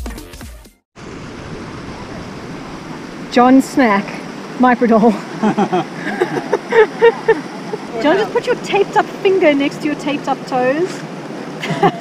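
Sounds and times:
electronic music with a beat: 0.0 - 0.8
mountain stream rushing: 1.0 - 12.0.

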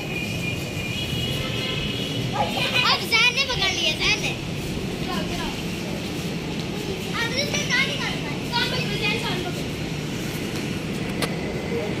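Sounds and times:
children calling out: 2.4 - 4.4.

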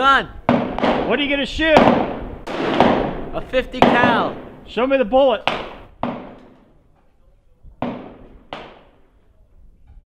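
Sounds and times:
gunshots with echo: 0.5 - 6.8, 7.8 - 9.1.

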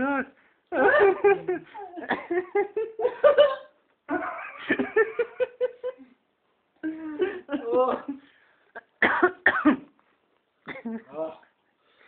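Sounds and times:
person laughing: 0.7 - 6.1
person coughing: 9.0 - 9.9.

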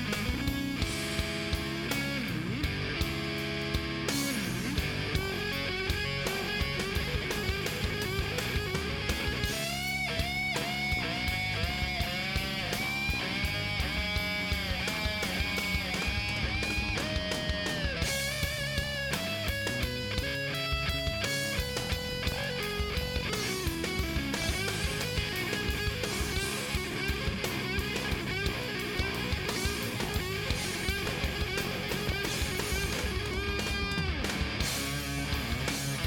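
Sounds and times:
electric guitar solo: 0.0 - 36.0
steady drum beat: 0.0 - 36.0.

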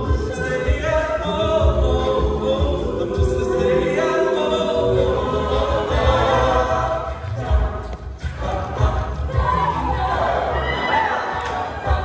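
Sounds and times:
a cappella choir singing: 0.0 - 12.0.

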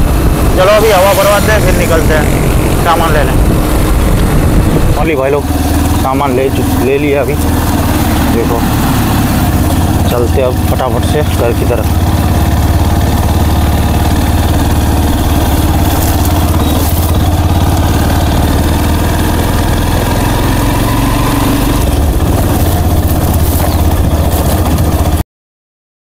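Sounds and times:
motorcycle engine running: 0.0 - 25.2.

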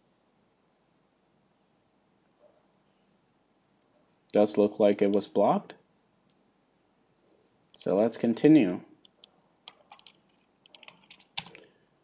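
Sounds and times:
computer keyboard keystrokes: 9.1 - 11.6.

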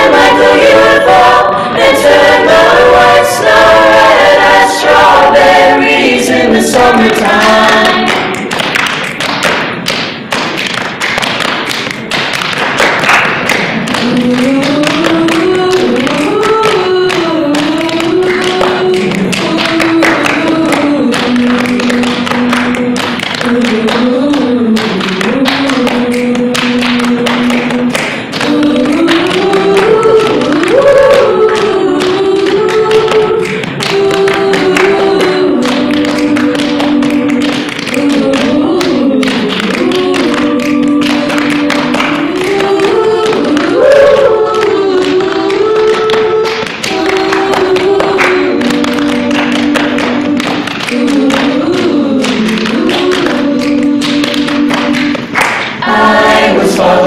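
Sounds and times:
choir singing a cappella: 0.0 - 8.5, 14.0 - 57.0
hand claps: 7.0 - 57.0.

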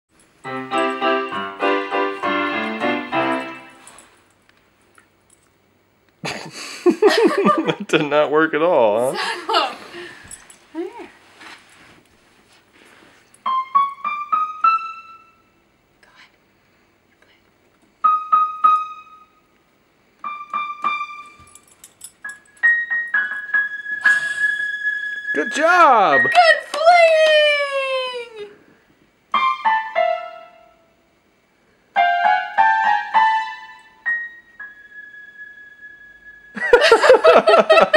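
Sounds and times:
electronic keyboard piano chords: 0.4 - 3.8, 13.4 - 15.4, 18.0 - 19.3, 20.2 - 21.4, 29.3 - 30.8, 31.9 - 35.8.

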